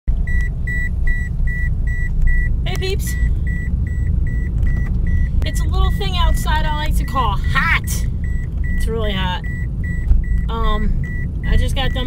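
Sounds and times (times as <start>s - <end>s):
low car cabin rumble: 0.1s - 12.0s
car warning chime beeping: 0.2s - 12.0s.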